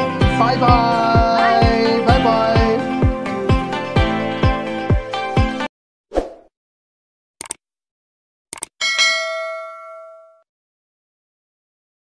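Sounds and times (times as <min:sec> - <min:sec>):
bright bell ding: 0:08.8 - 0:10.4.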